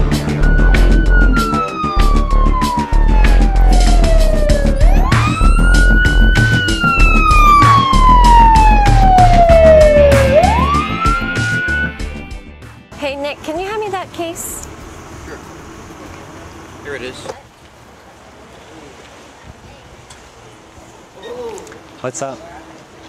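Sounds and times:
wailing siren: 0.0s - 12.2s
loud music with heavy beat: 0.0s - 12.9s.

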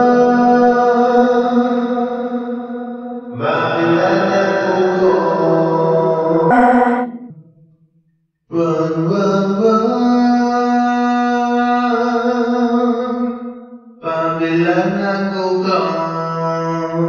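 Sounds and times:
person singing long notes with reverb: 3.4s - 7.3s.

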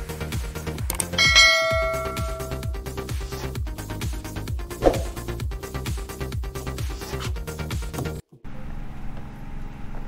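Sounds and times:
bright bell chime: 1.2s - 2.8s.

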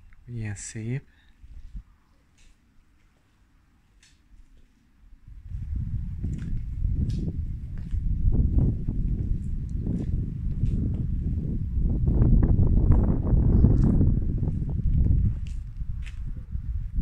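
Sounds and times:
footsteps on paving stones: 1.5s - 4.8s, 5.4s - 11.4s, 13.0s - 16.4s.

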